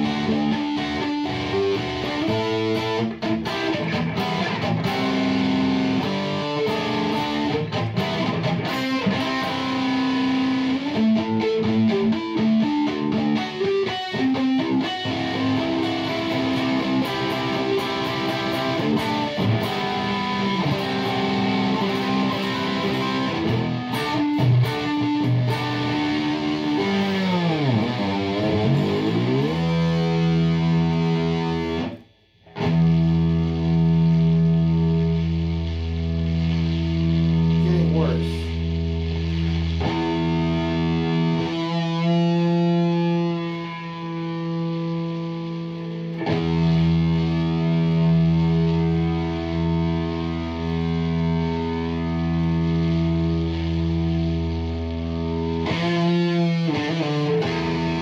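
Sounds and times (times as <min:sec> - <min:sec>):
distorted electric guitar chords: 0:00.0 - 0:58.0.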